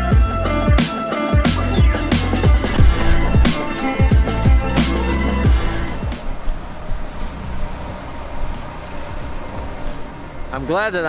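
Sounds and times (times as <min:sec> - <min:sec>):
road traffic rumble: 0:01.6 - 0:11.0
rain hissing: 0:02.5 - 0:10.2.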